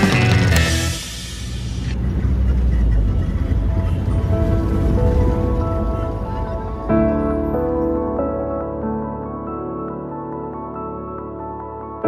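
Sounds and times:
vehicle rumble from inside cabin: 1.5 - 6.4
soft background music: 3.4 - 12.0.

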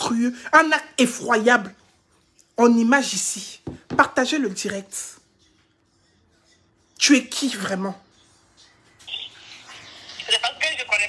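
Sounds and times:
voice over telephone line: 10.2 - 11.0.

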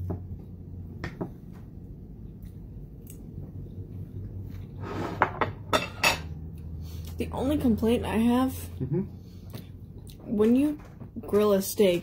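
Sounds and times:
low steady hum: 0.0 - 12.0
cutlery scraping on a plate: 4.8 - 6.3.

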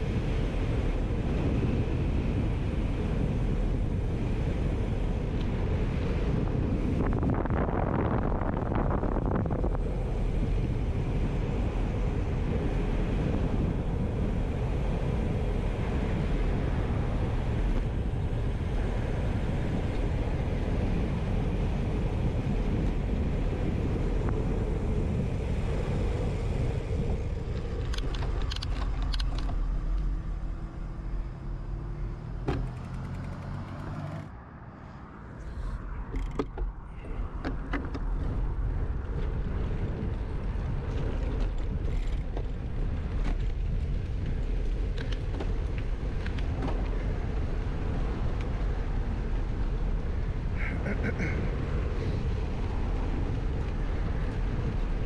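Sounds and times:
wind rush on microphone: 0.0 - 34.1, 34.7 - 55.0
bicycle tyres on pavement: 0.0 - 34.3, 35.5 - 55.0.

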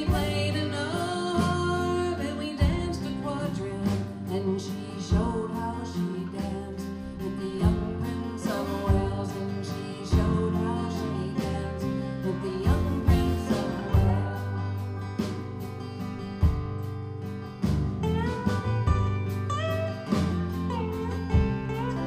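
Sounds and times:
woman singing: 0.0 - 15.3
lap steel guitar sliding: 0.0 - 22.0
strummed acoustic guitars: 0.0 - 22.0.

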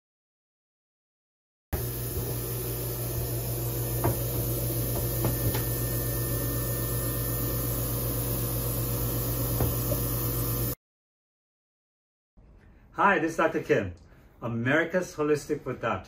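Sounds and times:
low machine hum: 1.8 - 10.8.

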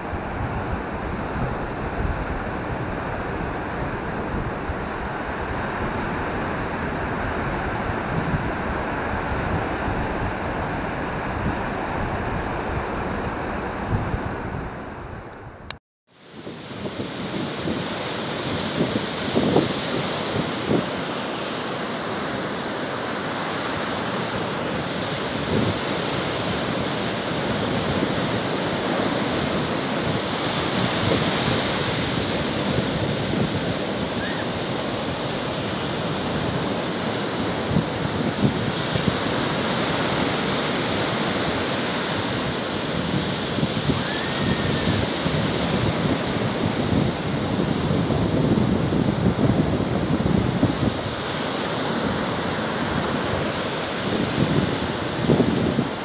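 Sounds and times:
sea surf breaking over rocks: 16.2 - 56.0.

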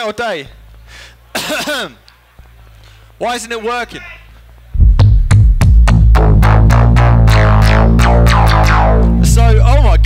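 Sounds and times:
synthesizer bass drone: 4.7 - 10.0
sharp electronic hits falling in pitch: 4.8 - 10.0.

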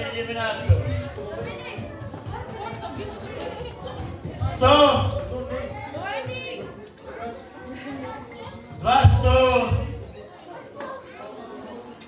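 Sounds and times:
chatter of voices in a hall: 0.0 - 12.0.

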